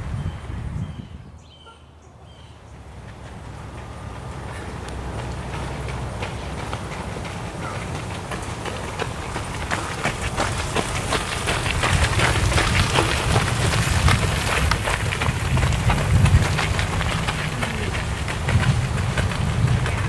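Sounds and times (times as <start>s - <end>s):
train rumbling on track: 2.8s - 20.0s.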